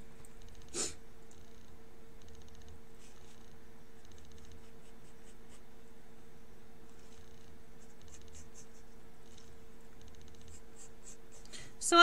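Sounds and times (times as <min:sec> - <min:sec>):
faint steady hum: 0:00.0 - 0:12.0
pen drawing on paper: 0:04.2 - 0:05.7, 0:07.0 - 0:09.4, 0:10.1 - 0:11.5.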